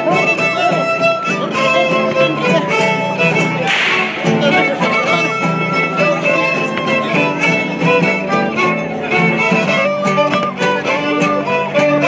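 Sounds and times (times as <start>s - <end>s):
violin-led band playing dance tune: 0.0s - 12.0s.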